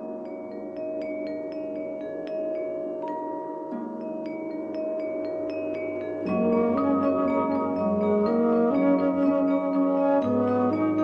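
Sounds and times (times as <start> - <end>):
bell-like tuned percussion: 0.0 - 11.0.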